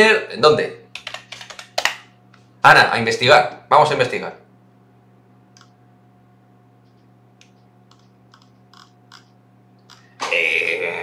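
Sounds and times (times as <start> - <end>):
steady low hum: 0.0 - 11.0
computer keyboard clicks: 1.0 - 2.0, 7.4 - 9.3.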